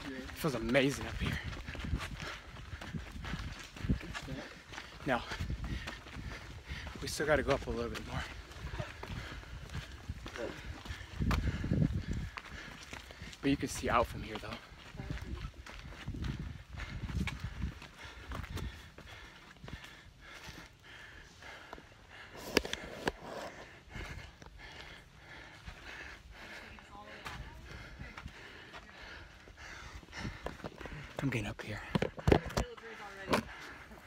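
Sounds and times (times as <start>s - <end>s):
footsteps on a forest trail: 0.0s - 34.0s
person breathing: 8.3s - 13.4s, 16.4s - 31.2s.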